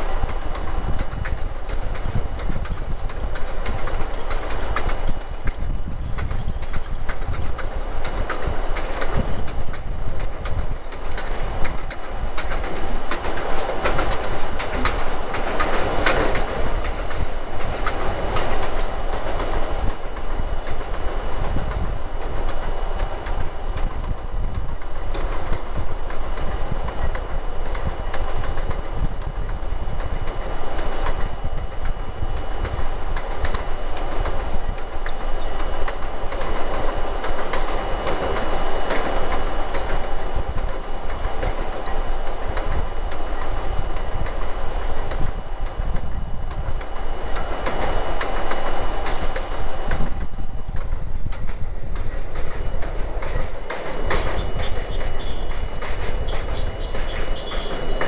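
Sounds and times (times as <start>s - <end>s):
train wheels rumbling on rail: 0.0s - 58.0s
wheels clacking over rail joints: 0.0s - 58.0s.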